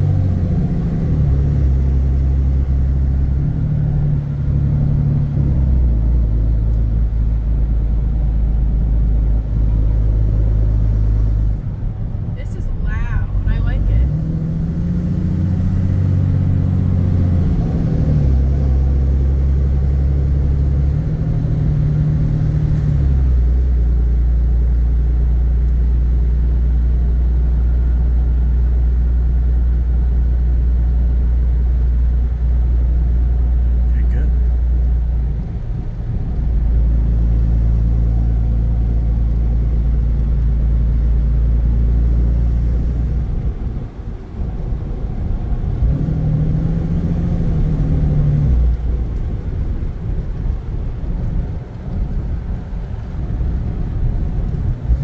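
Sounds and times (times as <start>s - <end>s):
diesel engine drone from inside cab: 0.0s - 55.0s.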